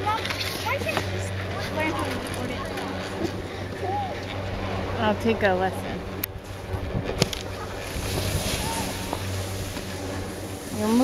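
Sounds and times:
wind noise on microphone: 0:02.6 - 0:11.0.

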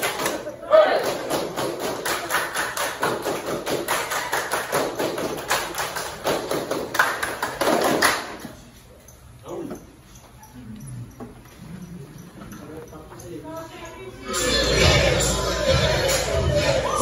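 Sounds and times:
group clapping in rhythm: 0:00.0 - 0:08.5
voices: 0:09.0 - 0:17.0.

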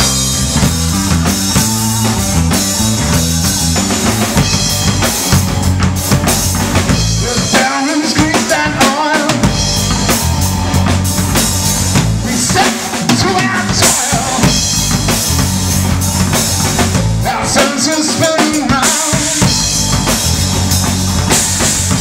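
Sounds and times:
wavering guitar notes: 0:00.0 - 0:17.8
rock band playing: 0:00.0 - 0:22.0.

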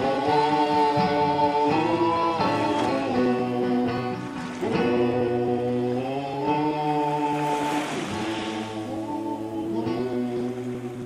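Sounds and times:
acoustic guitar chords: 0:00.0 - 0:11.0
men singing in harmony: 0:00.0 - 0:11.0.

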